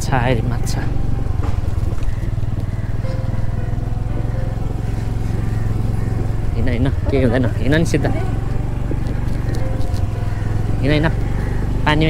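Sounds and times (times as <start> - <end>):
scooter engine running: 0.0 - 12.0
person's voice: 6.7 - 8.3.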